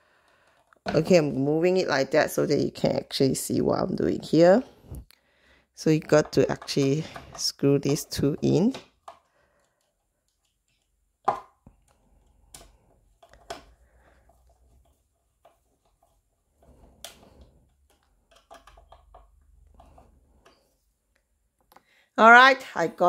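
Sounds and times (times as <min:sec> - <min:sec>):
screwdriver scraping and turning: 0:11.8 - 0:20.8.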